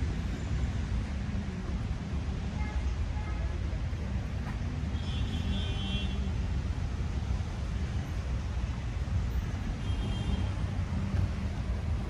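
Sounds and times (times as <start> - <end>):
city road traffic rumble: 0.0 - 12.0.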